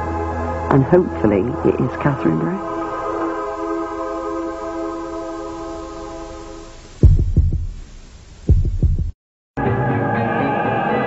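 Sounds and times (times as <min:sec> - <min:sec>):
heartbeat thumps: 0:07.0 - 0:09.2.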